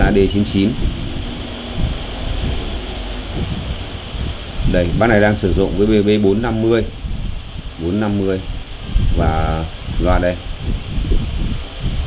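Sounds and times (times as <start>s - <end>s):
even hiss: 0.0s - 12.0s
low steady rumble: 0.0s - 12.0s.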